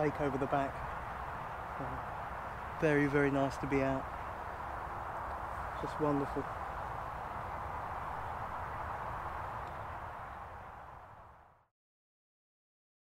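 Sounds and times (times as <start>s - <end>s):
steady rushing noise: 0.0s - 11.6s.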